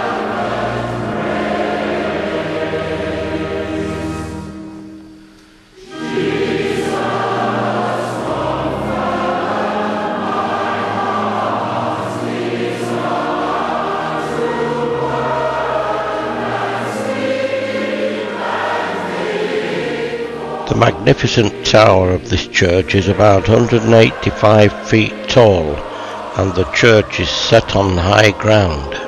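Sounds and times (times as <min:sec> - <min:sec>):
choir singing sacred music: 0:00.0 - 0:29.0.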